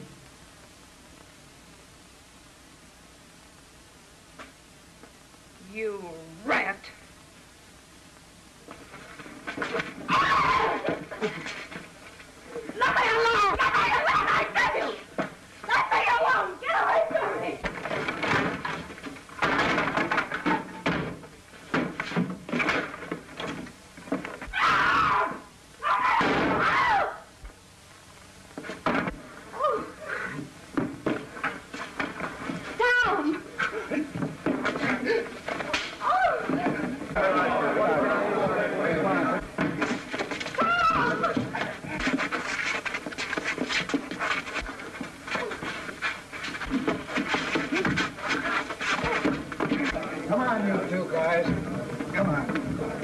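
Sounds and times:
thumps of scuffling bodies: 8.7s - 16.1s, 17.0s - 24.6s, 30.4s - 37.7s, 38.3s - 53.0s
people shouting and crying: 10.1s - 11.4s, 12.6s - 17.6s, 24.5s - 27.3s, 34.8s - 39.4s, 40.5s - 42.2s.

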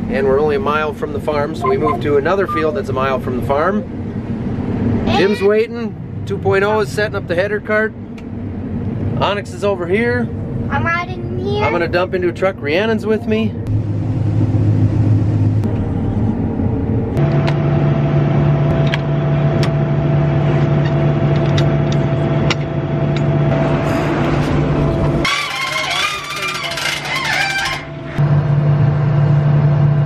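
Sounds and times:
combine harvester engine hum: 0.0s - 10.7s, 12.6s - 30.0s.

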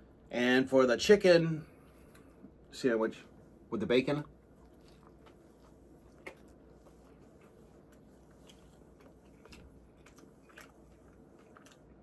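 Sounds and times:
person chewing crispy food: 4.3s - 12.0s.

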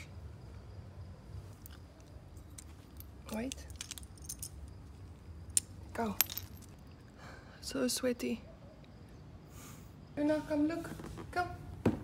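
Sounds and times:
harness buckle clicking and jingling: 1.5s - 6.8s.

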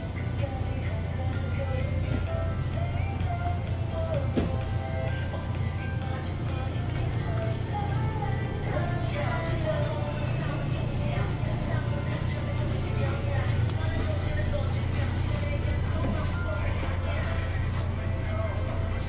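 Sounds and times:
background music with singing: 0.0s - 19.0s
steady low hum: 0.0s - 19.0s.

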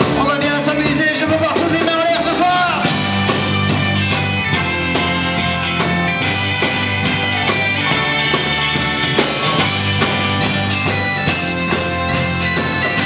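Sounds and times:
rock band with bass and drums: 0.0s - 13.0s
reedy shawm melody: 1.3s - 13.0s.

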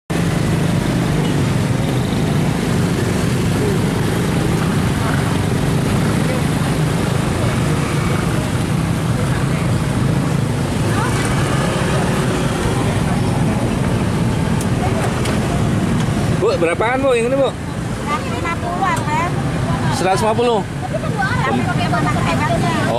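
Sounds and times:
low traffic rumble: 0.1s - 22.9s
faint voices: 3.3s - 16.8s.

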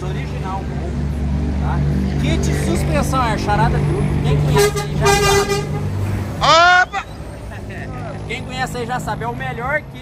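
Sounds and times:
bus engine running: 0.0s - 10.0s
vehicle horn honk: 4.5s - 6.9s.

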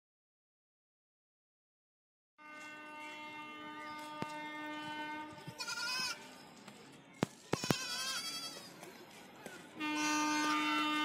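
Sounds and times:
goat bleating: 5.5s - 6.2s, 7.6s - 8.7s, 9.9s - 11.0s.

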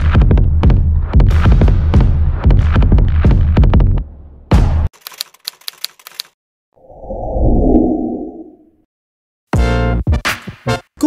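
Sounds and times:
typewriter keystroke clicks: 5.0s - 6.3s
low rumbling swell: 6.8s - 8.8s.

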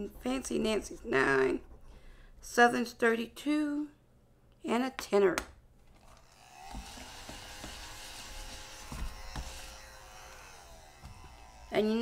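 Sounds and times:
mini vacuum motor humming: 6.0s - 12.0s.

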